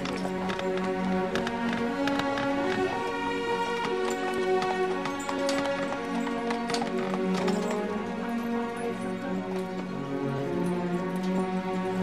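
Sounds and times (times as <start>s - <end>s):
horse hooves on hard road: 0.0s - 10.0s
background music with held notes: 0.0s - 12.0s.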